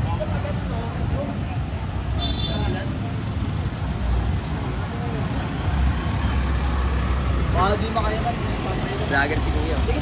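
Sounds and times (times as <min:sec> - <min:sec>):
car engines rumbling in traffic: 0:00.0 - 0:10.0.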